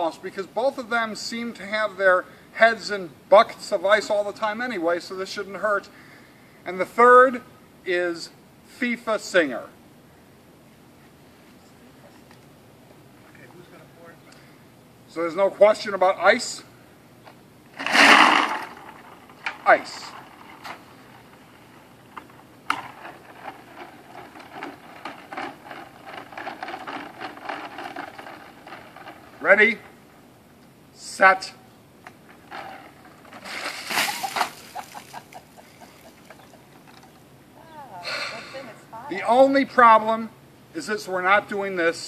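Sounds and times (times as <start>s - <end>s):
ice cubes rattling in plastic tray: 17.8s - 19.1s, 22.7s - 29.4s, 32.5s - 35.2s
water splashing onto grass: 33.4s - 35.4s.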